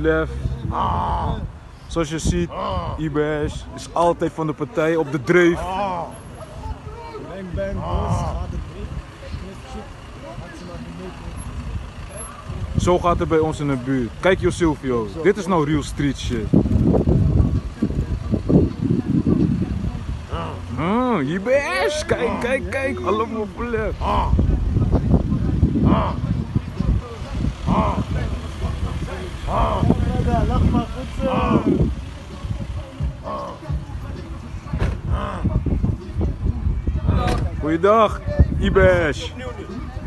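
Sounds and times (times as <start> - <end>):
men calling out loudly: 0.0 - 1.6, 2.2 - 4.1, 4.9 - 12.2, 20.0 - 34.4, 35.0 - 36.1
faint voices talking: 0.0 - 40.0
steady low street rumble: 0.0 - 40.0
rough low rumble: 22.3 - 39.0.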